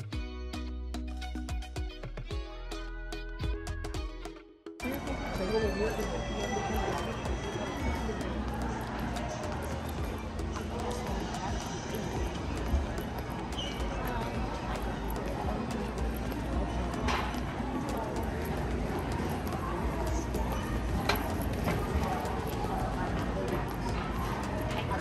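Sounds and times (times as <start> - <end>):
background music: 0.0 - 25.0
indistinct background voices: 4.8 - 25.0.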